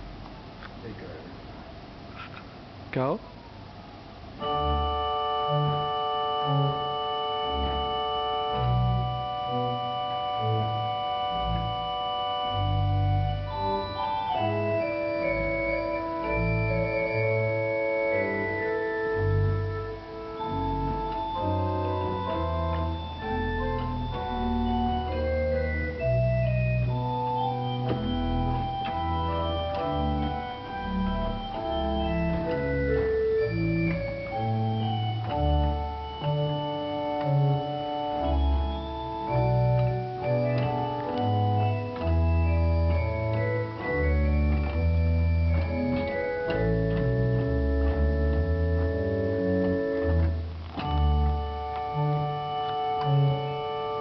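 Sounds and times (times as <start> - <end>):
pipe organ playing: 4.3 - 54.0.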